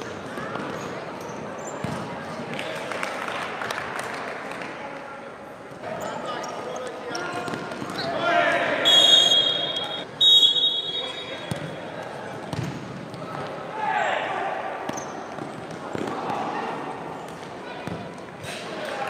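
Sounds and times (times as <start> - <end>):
referee's whistle: 8.8 - 11.5.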